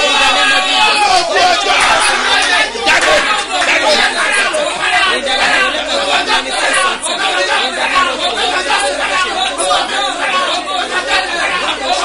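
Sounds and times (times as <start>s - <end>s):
man praying aloud: 0.0s - 12.0s.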